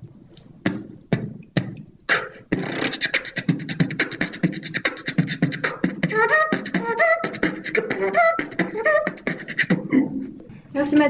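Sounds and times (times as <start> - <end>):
person beatboxing: 0.6 - 10.5.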